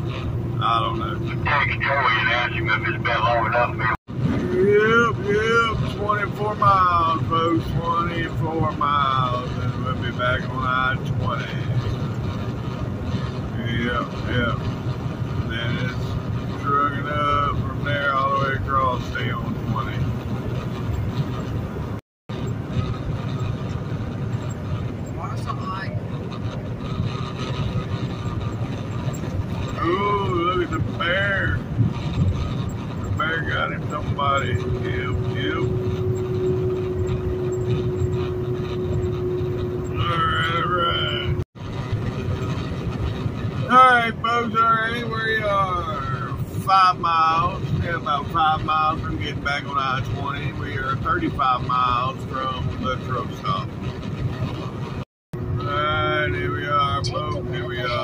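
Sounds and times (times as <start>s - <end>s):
truck engine and road rumble: 0.0s - 58.0s
person talking: 0.6s - 11.7s, 29.8s - 31.6s, 33.2s - 35.7s, 39.9s - 41.4s, 43.7s - 53.7s, 55.6s - 58.0s.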